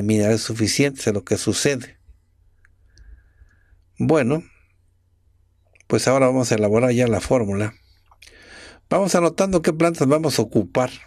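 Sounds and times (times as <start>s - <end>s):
steady low hum: 0.0s - 11.0s
faint clicks: 2.0s - 4.0s, 5.6s - 5.9s, 8.0s - 8.4s.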